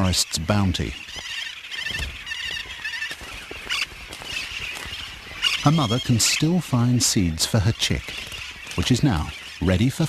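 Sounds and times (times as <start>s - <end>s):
parakeets chattering: 0.0s - 10.0s.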